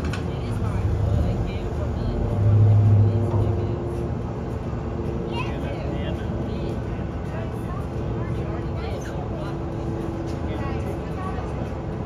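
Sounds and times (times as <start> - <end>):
constant hum: 0.0 - 12.0
faint voices: 0.0 - 12.0.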